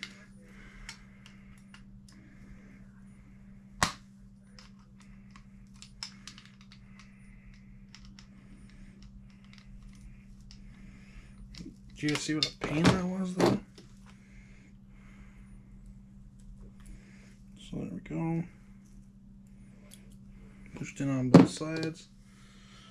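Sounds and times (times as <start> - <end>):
steady low hum: 0.0 - 22.9
plastic and metal parts clicking: 4.6 - 8.3.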